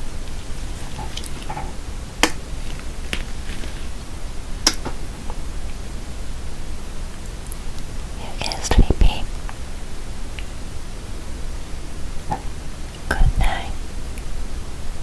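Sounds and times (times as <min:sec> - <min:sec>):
steady low hum: 0:00.0 - 0:15.0
person whispering: 0:08.2 - 0:09.3, 0:13.0 - 0:13.8.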